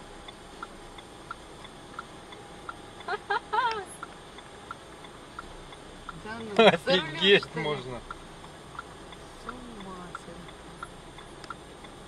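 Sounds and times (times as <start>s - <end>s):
car indicator ticking: 0.0s - 12.0s.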